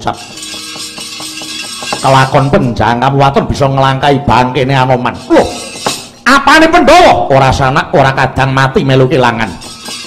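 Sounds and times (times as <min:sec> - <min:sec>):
gamelan metallophone tones: 0:00.0 - 0:02.8, 0:05.2 - 0:06.3.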